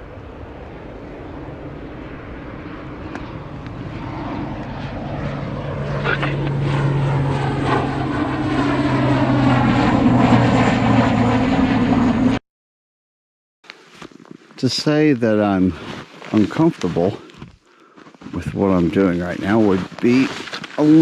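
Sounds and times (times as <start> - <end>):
propeller engines droning: 0.0 - 12.4, 14.1 - 21.0
steady low hum: 0.0 - 12.4.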